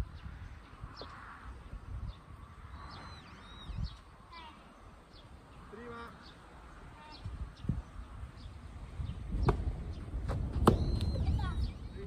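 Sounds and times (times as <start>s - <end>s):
birds chirping: 0.0s - 12.0s.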